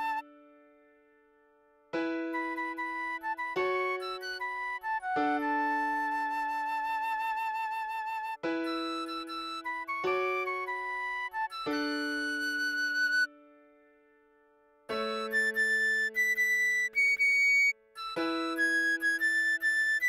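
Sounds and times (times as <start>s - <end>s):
recorder melody: 14.9s - 20.0s.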